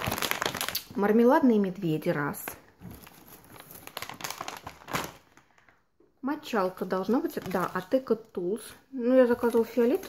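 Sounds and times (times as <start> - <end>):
packaged goods rustling in cardboard box: 0.0 - 0.8, 2.8 - 5.7.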